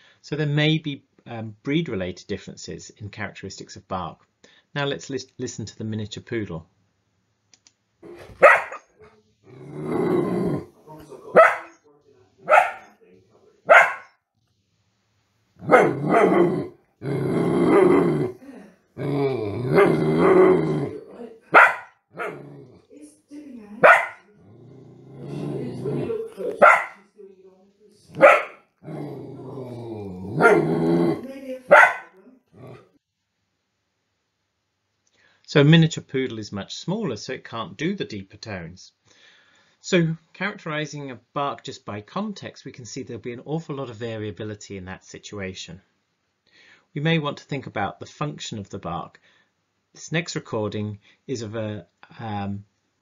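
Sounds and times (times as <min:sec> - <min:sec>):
small dog barking: 0:08.0 - 0:08.9, 0:11.3 - 0:11.8, 0:12.4 - 0:13.0, 0:13.7 - 0:14.1, 0:15.6 - 0:16.7, 0:19.7 - 0:22.8, 0:23.8 - 0:24.3, 0:25.7 - 0:27.0, 0:28.1 - 0:29.6, 0:30.2 - 0:32.8.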